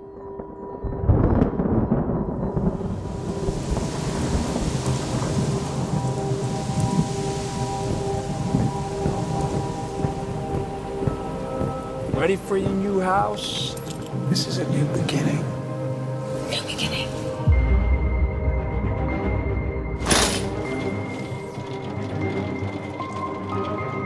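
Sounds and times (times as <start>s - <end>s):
droning film score: 0.0s - 24.0s
thunder rumble: 0.4s - 13.7s
heavy rain hiss: 2.6s - 17.5s.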